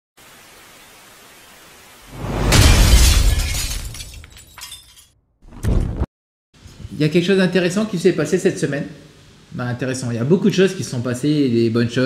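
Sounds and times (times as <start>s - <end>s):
tv static hiss: 0.2s - 2.1s
short heavy burst: 2.1s - 3.3s
loud crash with deep low end: 2.1s - 4.0s.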